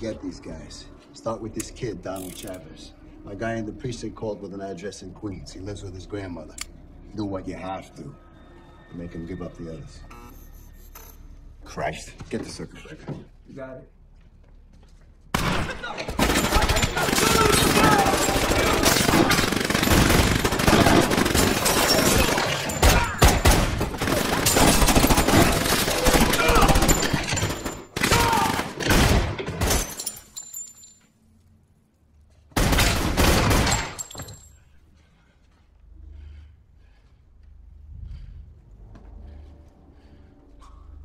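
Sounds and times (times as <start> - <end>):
rapid automatic gunfire: 15.4 - 27.2.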